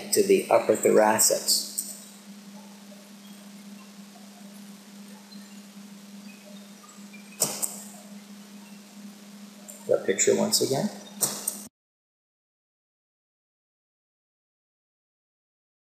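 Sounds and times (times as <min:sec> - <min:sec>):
steady low hum: 0:00.0 - 0:11.7.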